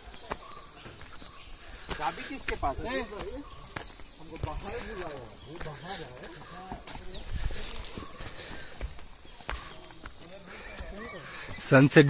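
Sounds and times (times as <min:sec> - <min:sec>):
faint voices: 0:00.0 - 0:12.0
footsteps on stony dirt trail: 0:00.0 - 0:12.0.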